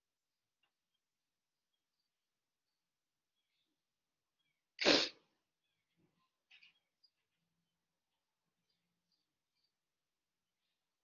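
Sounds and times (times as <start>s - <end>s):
person sneezing: 4.8s - 5.2s.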